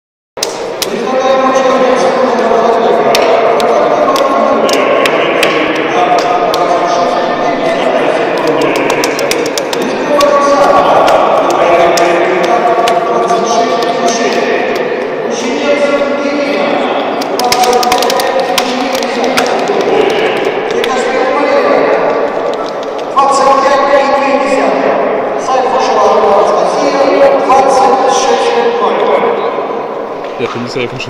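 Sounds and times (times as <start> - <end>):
murmur of voices: 0.4 - 31.0
spectators clapping: 8.4 - 13.0, 17.2 - 21.0.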